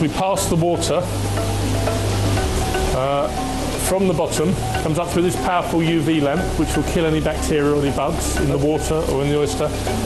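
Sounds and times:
faint background music: 0.0 - 10.0
water rushing in tanks: 0.0 - 10.0.

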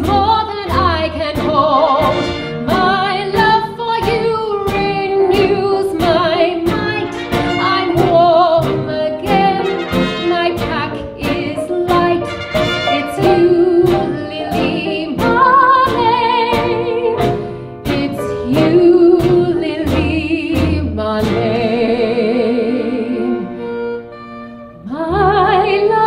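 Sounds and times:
woman singing with vibrato: 0.0 - 23.6, 24.8 - 26.0
drums keeping steady beat: 1.4 - 21.5
big band horns: 1.5 - 3.0, 6.8 - 14.3.

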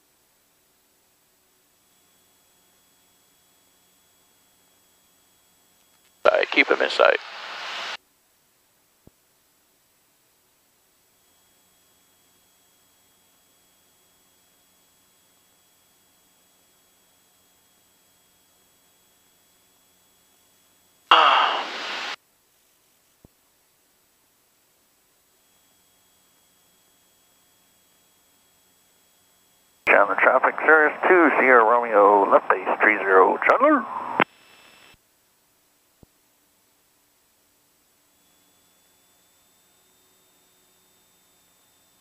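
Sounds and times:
speech over headset radio: 6.3 - 7.2, 21.1 - 22.1, 29.9 - 34.2
radio hiss: 6.3 - 8.0, 21.1 - 22.2, 29.9 - 35.0.

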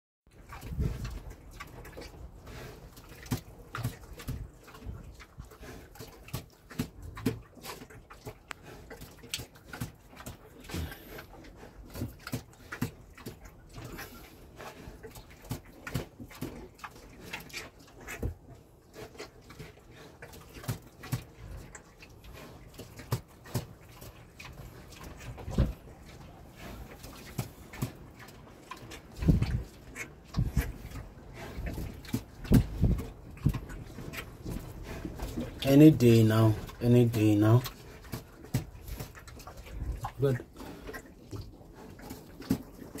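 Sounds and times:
pig grunting and snuffling: 0.3 - 43.0.

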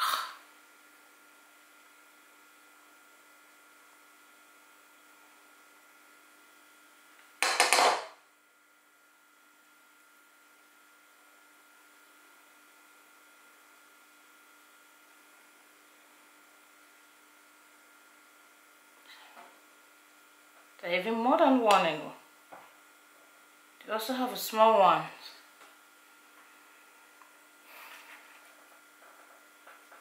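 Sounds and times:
faint room hum: 0.0 - 30.0.

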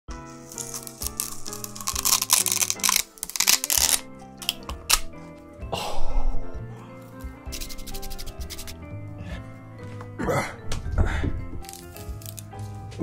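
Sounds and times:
background music: 0.1 - 13.0
sugar cane crunching and tearing: 0.4 - 5.1, 11.6 - 12.6.

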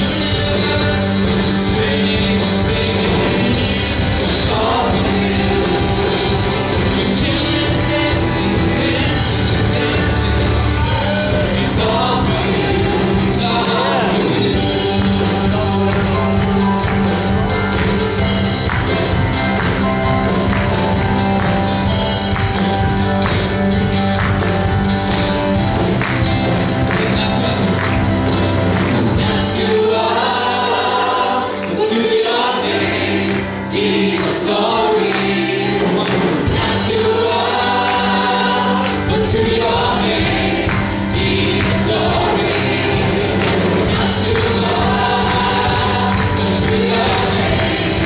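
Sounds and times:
gospel band playing: 0.0 - 48.0
women singing together: 4.1 - 16.2, 29.2 - 48.0.

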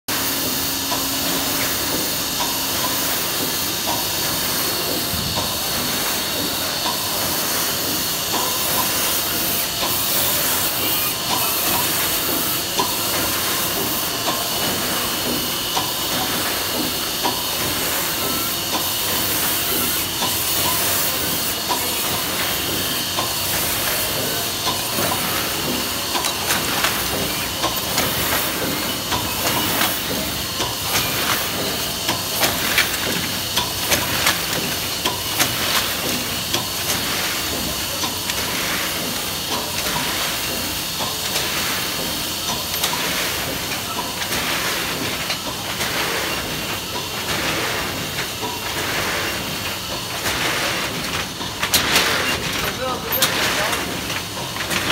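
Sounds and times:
press machine hiss and clatter: 0.1 - 54.9.

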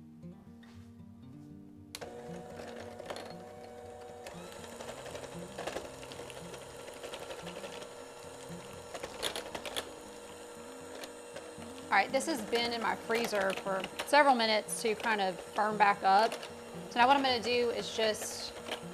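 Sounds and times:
electric hand mixer running: 2.0 - 18.9.

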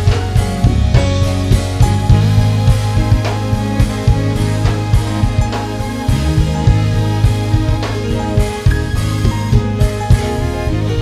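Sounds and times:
drum kit beat: 0.0 - 11.0
keyboard chords: 0.0 - 11.0.

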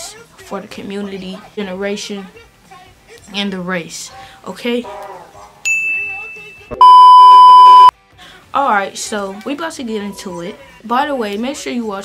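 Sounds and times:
steady single-pitched beep: 6.7 - 7.9.

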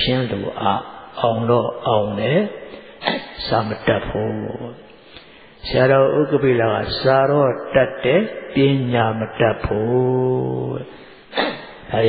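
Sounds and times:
man chanting slowly: 0.0 - 4.9, 5.6 - 12.0.

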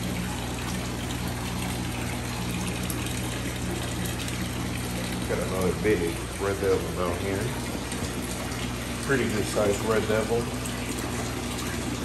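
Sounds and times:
pump humming: 0.0 - 12.0
water splashing into tank: 0.0 - 12.0.

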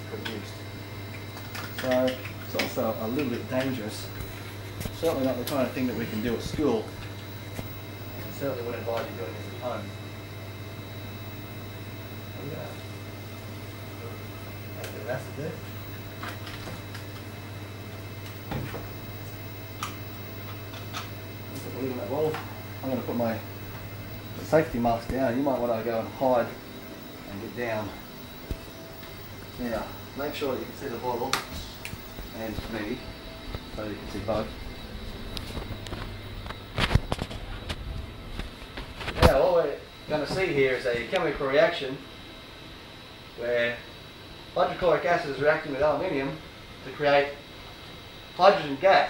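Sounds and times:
steady low hum: 0.0 - 49.0.

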